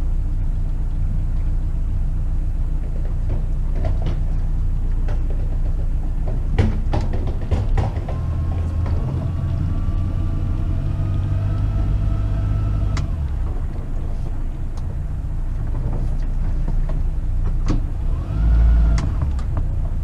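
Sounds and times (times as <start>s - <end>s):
low engine rumble: 0.0s - 20.0s.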